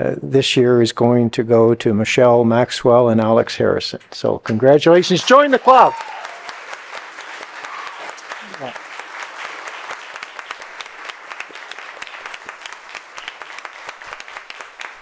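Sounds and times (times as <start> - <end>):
audience applauding: 5.0 - 15.0.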